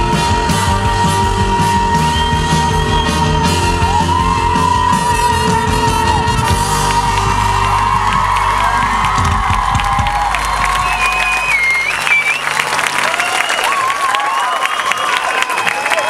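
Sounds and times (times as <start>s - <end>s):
audience applauding and cheering: 0.0s - 16.0s.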